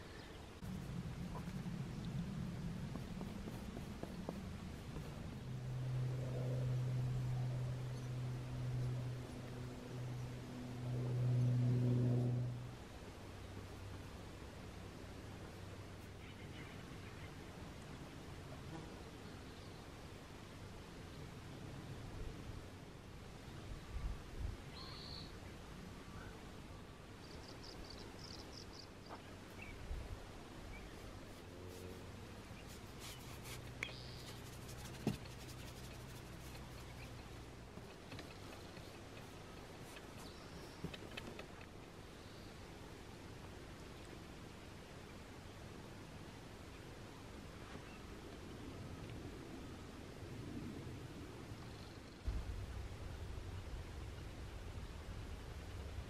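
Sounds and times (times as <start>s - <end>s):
low buzzing hum: 0.0s - 56.0s.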